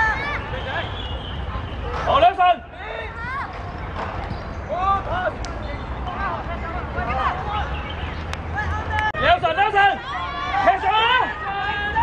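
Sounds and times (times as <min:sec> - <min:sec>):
young voices shouting: 0:00.0 - 0:01.0, 0:08.5 - 0:12.0.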